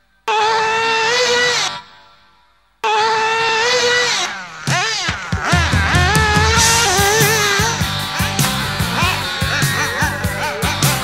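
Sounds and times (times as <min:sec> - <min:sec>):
model engine revving: 0:02.8 - 0:11.0.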